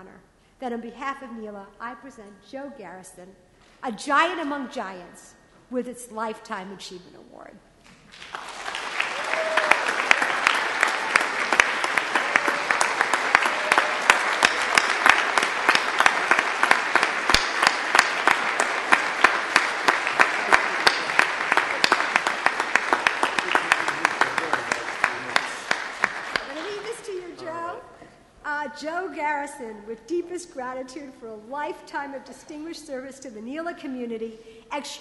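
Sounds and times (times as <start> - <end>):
audience applauding: 8.1 - 27.6.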